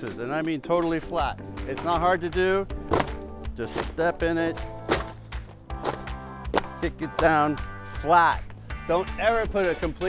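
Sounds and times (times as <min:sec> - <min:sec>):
background music: 0:00.0 - 0:10.0
cardboard box crunching underfoot: 0:04.8 - 0:06.8.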